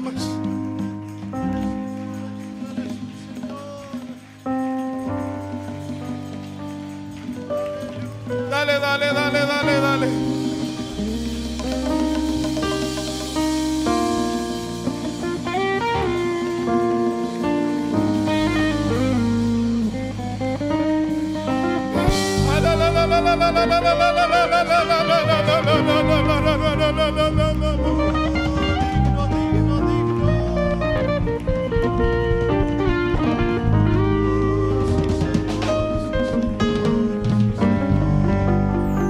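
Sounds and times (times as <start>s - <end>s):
guitar playing held notes: 0.0s - 39.0s
worship band music: 0.0s - 39.0s.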